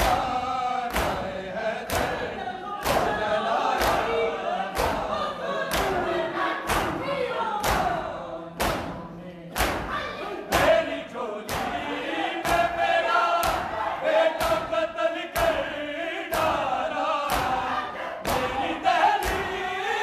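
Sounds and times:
men beating chests in unison: 0:00.0 - 0:19.8
men's voices chanting: 0:00.0 - 0:20.0.

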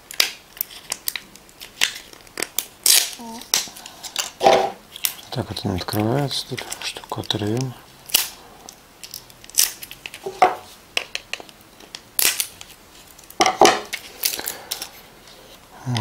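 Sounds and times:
plastic packaging crinkling and tearing: 0:00.0 - 0:15.4.

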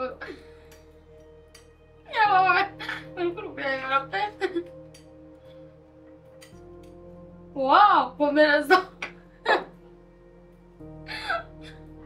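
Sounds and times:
music of held tones: 0:00.0 - 0:12.0.

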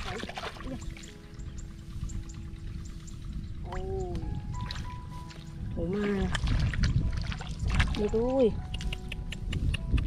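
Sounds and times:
low rumble: 0:00.0 - 0:08.8
background music with held chords: 0:00.0 - 0:10.0.

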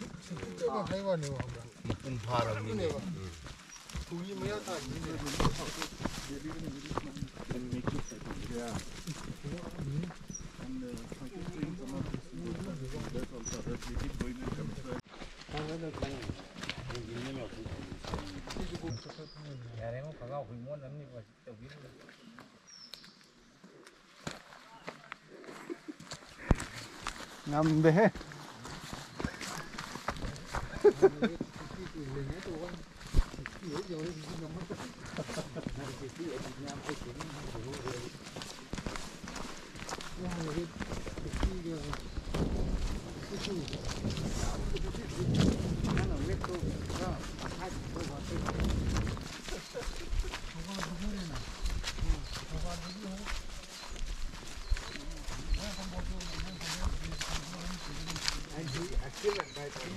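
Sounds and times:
footsteps on stony dirt trail: 0:00.0 - 0:19.6, 0:22.1 - 0:59.9
people talking indistinctly: 0:00.0 - 0:24.0, 0:24.6 - 0:59.9.

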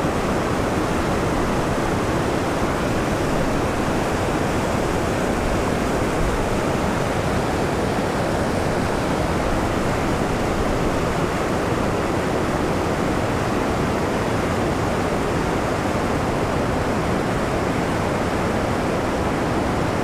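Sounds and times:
water rushing through rapids: 0:00.0 - 0:20.0.

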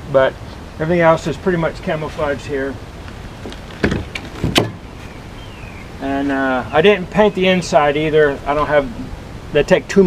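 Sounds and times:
light wind: 0:00.0 - 0:10.0
knocks on plastic kayak hull: 0:03.8 - 0:04.8.

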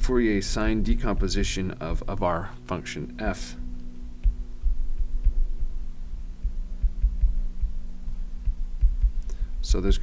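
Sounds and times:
low electrical hum: 0:00.0 - 0:10.0
stylus thudding on tablet: 0:08.4 - 0:09.2.

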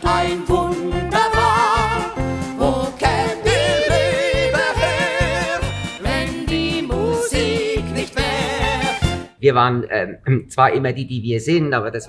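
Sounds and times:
singers with broad vibrato: 0:00.0 - 0:09.0.

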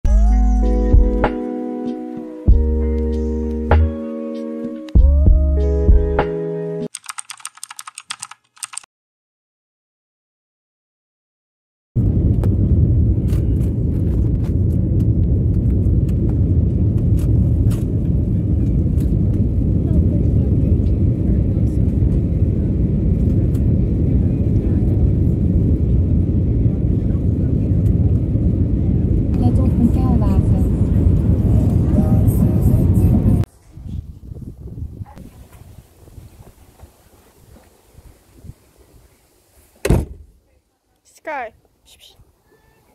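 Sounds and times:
car road rumble from inside: 0:12.0 - 0:33.5.

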